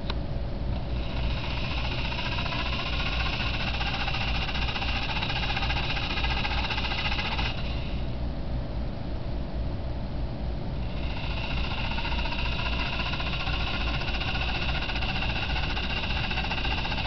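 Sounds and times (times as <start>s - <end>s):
gear motors whining: 0.8s - 8.2s, 10.8s - 17.0s.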